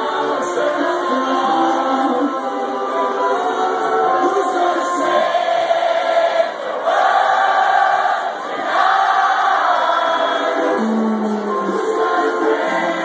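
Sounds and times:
house music over sound system: 0:00.0 - 0:05.4, 0:10.4 - 0:13.0
crowd cheering and singing along: 0:00.0 - 0:13.0.

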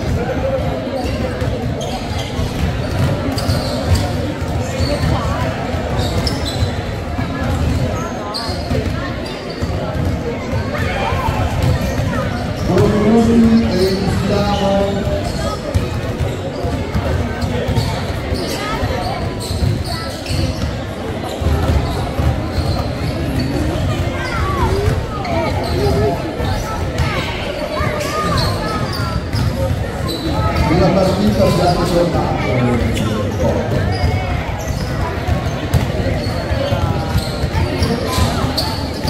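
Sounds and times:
basketballs bouncing on floor: 0:00.0 - 0:39.0.

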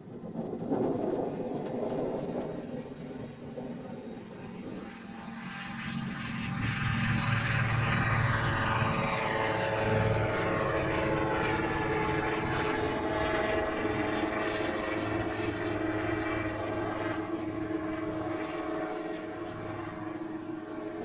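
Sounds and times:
ultralight plane engine droning: 0:00.0 - 0:21.0.

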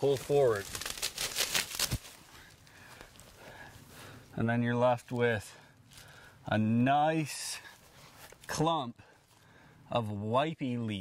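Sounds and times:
leaves tearing: 0:00.0 - 0:03.4
rustling of moist leaves: 0:00.0 - 0:06.5.

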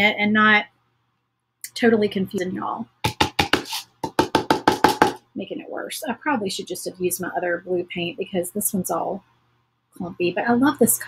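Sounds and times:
fast sharp knocks: 0:03.0 - 0:05.2.

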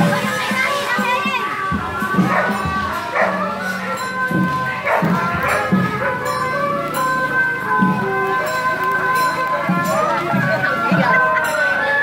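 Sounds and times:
crowd and children's voices: 0:00.0 - 0:12.0
music with long held notes: 0:00.0 - 0:12.0.

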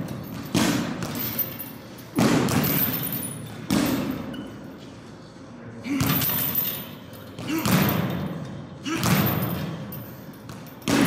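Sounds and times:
gloved punch on boxing bag: 0:00.0 - 0:01.2, 0:02.2 - 0:02.8, 0:10.5 - 0:11.0
hanging chains jingling: 0:01.1 - 0:02.1, 0:06.2 - 0:07.4, 0:09.3 - 0:10.9.

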